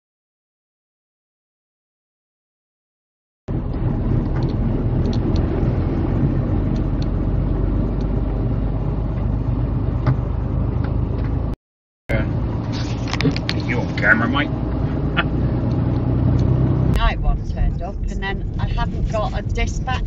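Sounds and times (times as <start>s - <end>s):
road noise: 3.5s - 20.0s
vehicle engine drone: 3.5s - 20.0s.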